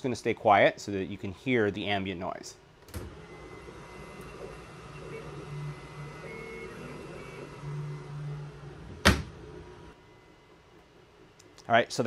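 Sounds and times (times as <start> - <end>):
printer low hum: 2.9 - 11.4
whining tones of print head: 3.1 - 10.8.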